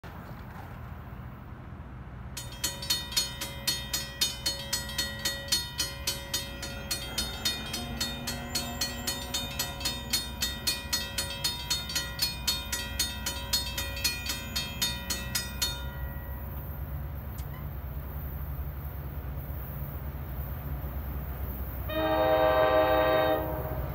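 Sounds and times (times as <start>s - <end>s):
crossing warning bell ringing: 2.3s - 18.5s, 19.6s - 23.9s.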